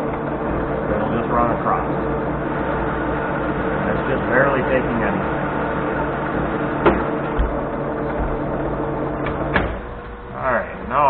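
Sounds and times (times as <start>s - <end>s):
lathe droning: 0.0s - 11.0s.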